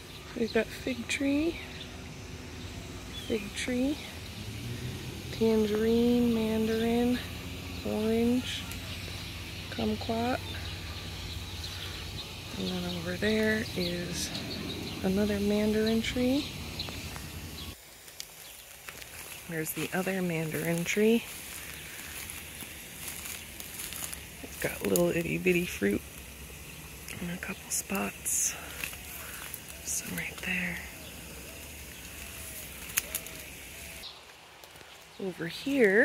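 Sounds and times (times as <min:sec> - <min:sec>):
low outdoor rumble: 0:00.0 - 0:34.1
faint hiss: 0:00.0 - 0:36.0
low rumble: 0:01.5 - 0:17.8
small ticks: 0:16.5 - 0:35.1.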